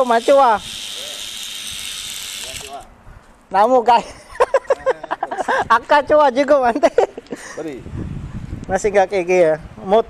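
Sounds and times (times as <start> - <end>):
toy drone motors whirring: 0.0 - 2.9.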